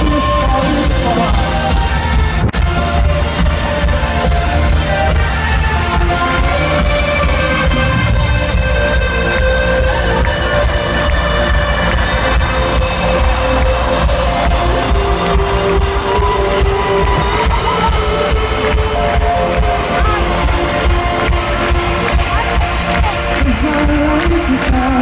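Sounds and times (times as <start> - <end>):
live rock band playing: 0.0 - 25.0.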